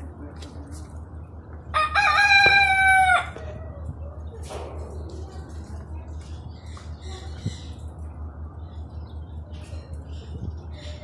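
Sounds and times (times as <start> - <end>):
rooster crowing: 1.7 - 3.4.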